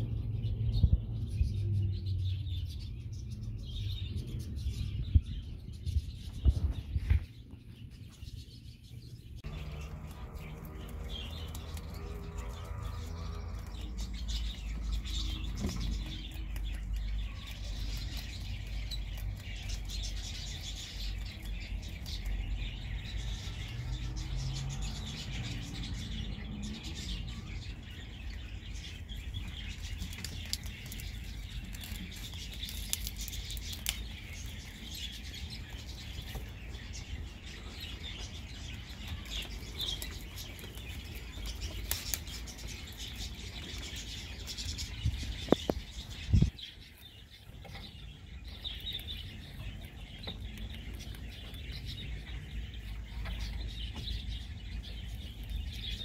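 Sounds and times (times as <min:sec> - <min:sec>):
small birds chirping: 0:00.0 - 0:56.0
steady low rumble: 0:00.0 - 0:56.0.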